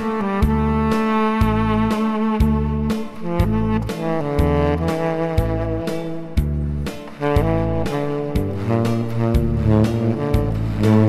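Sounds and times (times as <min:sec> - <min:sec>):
backing track with bass and beat: 0:00.0 - 0:11.0
tenor saxophone melody: 0:00.0 - 0:11.0.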